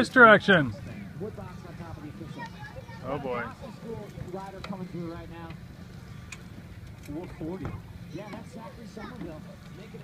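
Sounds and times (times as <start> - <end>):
steady low hum: 0.0 - 10.0.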